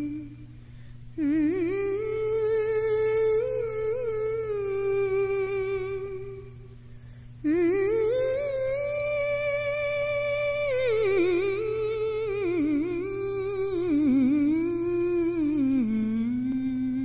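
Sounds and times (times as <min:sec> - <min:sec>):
woman humming held notes: 0:00.0 - 0:00.6, 0:01.2 - 0:06.7, 0:07.4 - 0:17.0.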